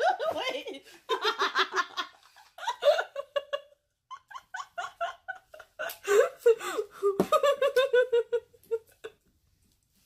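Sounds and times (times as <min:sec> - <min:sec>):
woman laughing: 0:00.0 - 0:09.2.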